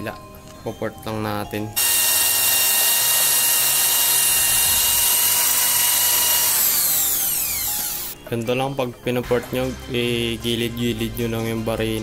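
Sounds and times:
drill motor winding down: 1.8s - 8.2s
electric drill grinding metal: 1.8s - 8.2s.

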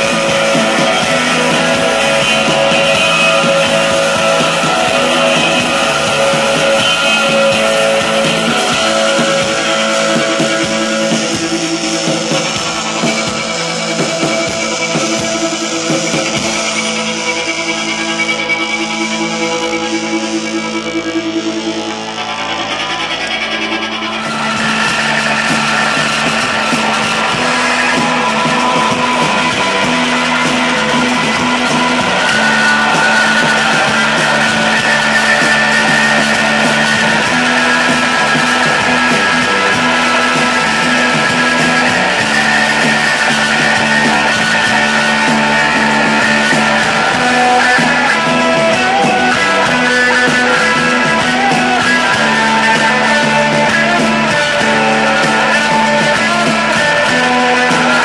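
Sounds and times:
psychedelic rock band playing live: 0.0s - 58.0s.

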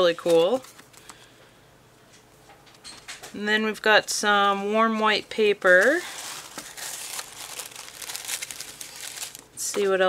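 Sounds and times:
tissue paper crinkling: 5.3s - 9.5s.

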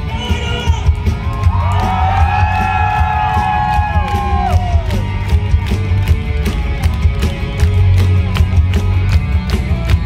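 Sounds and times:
rock band playing live: 0.0s - 10.0s
crowd whooping: 1.1s - 5.6s.

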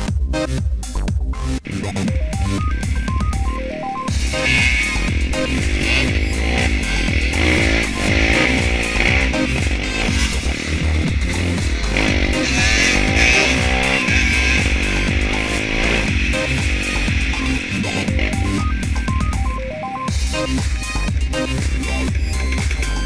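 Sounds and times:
electronic music with steady beat: 0.0s - 23.0s
dirt bike engine revving: 1.6s - 23.0s.

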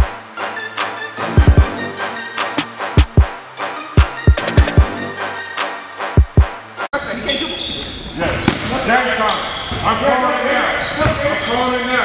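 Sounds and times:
hip-hop beat with heavy bass: 0.0s - 3.4s, 4.0s - 6.6s.

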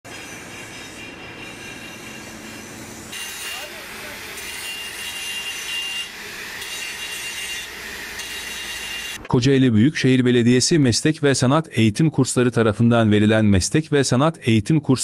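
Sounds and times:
workshop noise: 0.0s - 10.2s
angle grinder cutting metal pipe: 0.1s - 9.2s.

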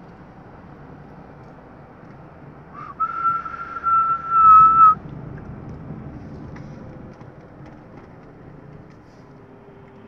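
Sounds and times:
car on the road humming: 0.0s - 10.0s
long whistled note: 2.8s - 5.0s.

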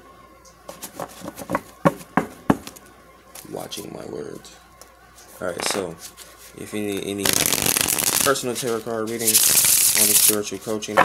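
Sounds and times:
cards tapping together: 7.3s - 8.4s.

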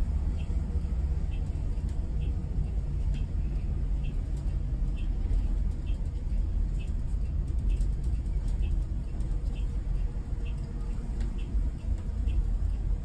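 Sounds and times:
bus rumbling on highway: 0.0s - 13.0s.

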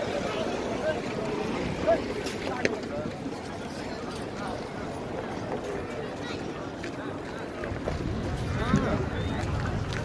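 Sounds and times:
wind rumble on microphone: 7.5s - 10.0s.

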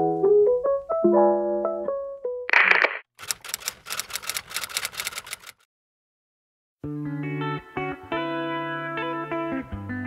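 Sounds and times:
typewriter key clacks: 2.5s - 5.6s.

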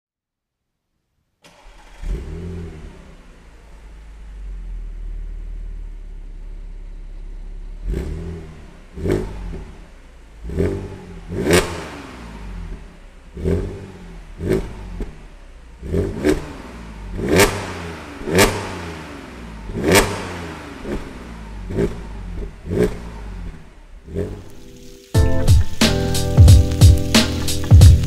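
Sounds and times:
car engine starting and idling: 1.4s - 28.0s
engine revving: 1.5s - 25.0s.

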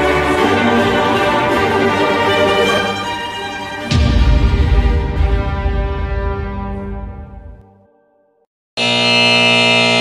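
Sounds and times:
harsh buzzer tone: 8.8s - 10.0s.

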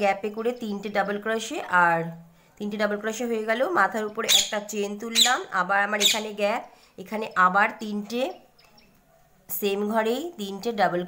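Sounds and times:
woman speaking: 0.0s - 8.4s, 9.5s - 11.0s.

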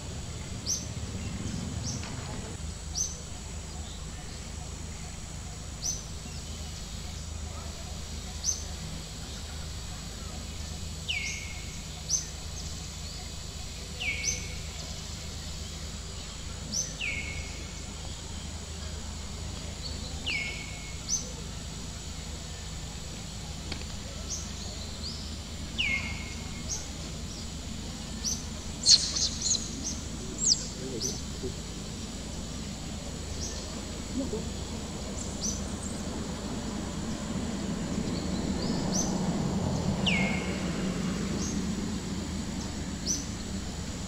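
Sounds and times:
low background rumble: 0.0s - 44.0s
bird whistling: 28.8s - 30.7s.

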